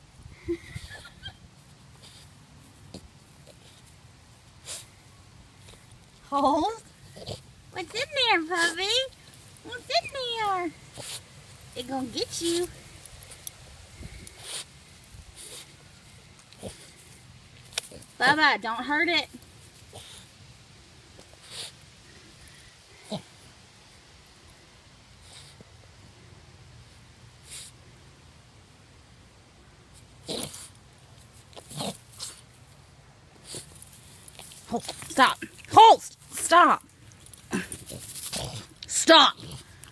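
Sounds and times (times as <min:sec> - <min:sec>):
dog sniffing: 0:01.9 - 0:06.0, 0:10.8 - 0:11.4, 0:12.0 - 0:18.2, 0:21.2 - 0:21.8, 0:25.2 - 0:25.6.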